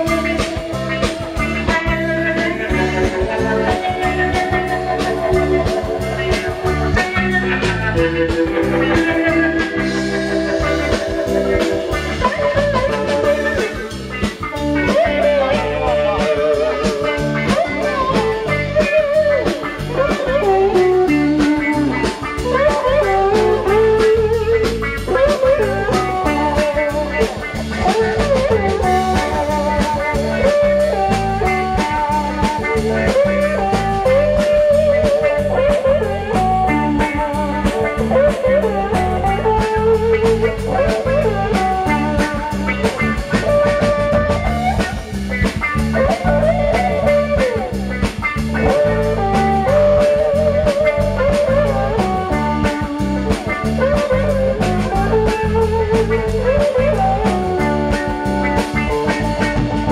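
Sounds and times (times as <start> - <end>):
drum kit: 0.0 - 59.9
electric guitar lead: 0.0 - 59.9
low accompaniment: 0.0 - 59.9.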